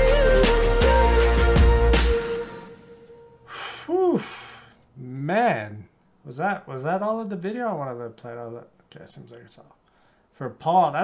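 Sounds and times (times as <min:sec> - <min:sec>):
man sighing: 0:03.4 - 0:05.2.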